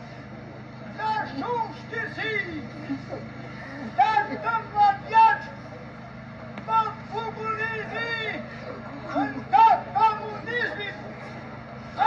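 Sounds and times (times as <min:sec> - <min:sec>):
steady low hum: 0:00.0 - 0:12.0
man shouting a lament: 0:00.9 - 0:03.1, 0:03.8 - 0:05.6, 0:06.7 - 0:11.0.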